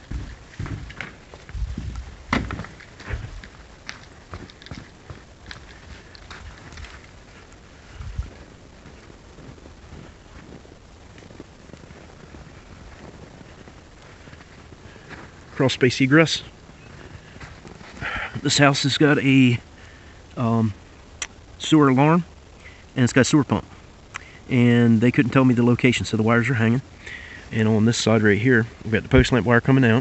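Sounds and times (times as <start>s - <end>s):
footsteps on snow: 0.0s - 18.6s
door knocks and thumps: 2.3s - 2.7s.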